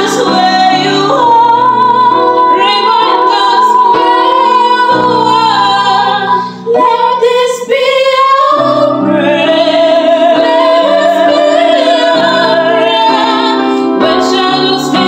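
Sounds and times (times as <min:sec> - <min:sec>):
women singing a ballad duet: 0:00.0 - 0:15.0.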